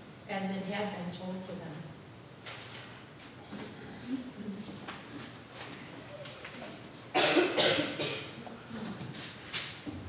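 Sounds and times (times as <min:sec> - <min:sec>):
person coughing: 0:07.1 - 0:08.4.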